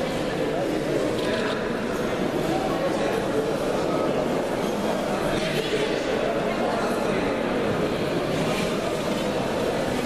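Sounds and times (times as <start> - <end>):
crowd chatter in a large hall: 0.0 - 10.0.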